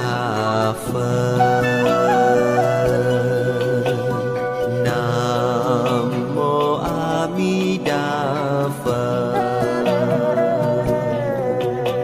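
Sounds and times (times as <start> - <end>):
chanting voice with vibrato: 0.0 - 12.0.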